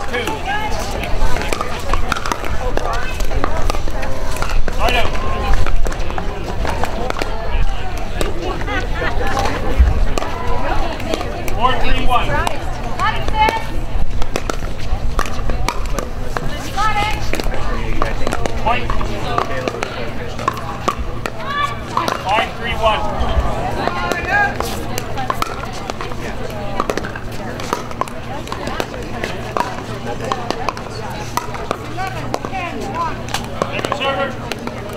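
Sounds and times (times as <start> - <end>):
voices of players: 0.0 - 34.9
ball bouncing on hard court: 25.0 - 26.2.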